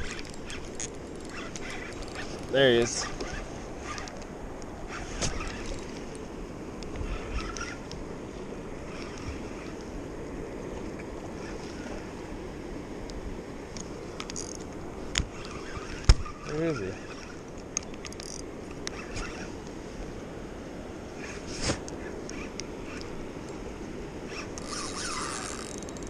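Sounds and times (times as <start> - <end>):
fishing gear knocks and clicks: 0.0 - 6.2, 13.7 - 19.8, 24.3 - 26.0
river water running: 0.0 - 26.0.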